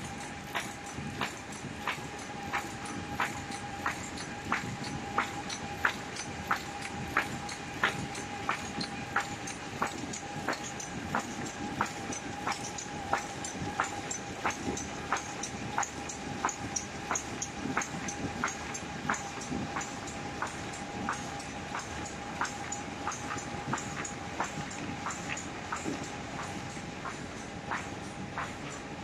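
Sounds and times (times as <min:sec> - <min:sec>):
machine hum and rumble: 0:00.0 - 0:29.0.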